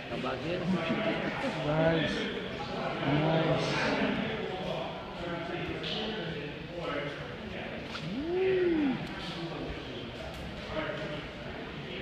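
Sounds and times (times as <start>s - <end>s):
man's drawn-out ooh exclamation: 8.0s - 9.3s.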